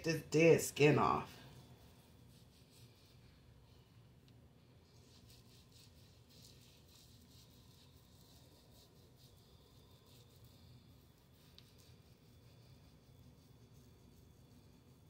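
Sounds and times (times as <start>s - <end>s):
hands rubbing scrub on skin: 4.8s - 13.8s.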